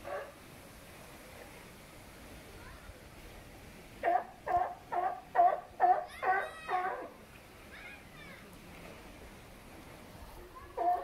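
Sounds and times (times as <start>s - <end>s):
sea lion barking: 4.0s - 7.2s.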